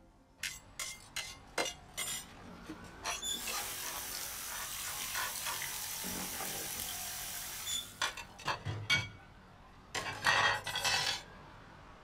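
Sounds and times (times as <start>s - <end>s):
dishes clinking: 10.0s - 11.2s.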